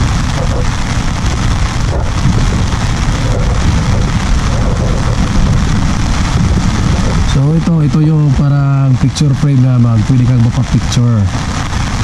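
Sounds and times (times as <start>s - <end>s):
rain drumming on umbrella: 0.0s - 12.0s.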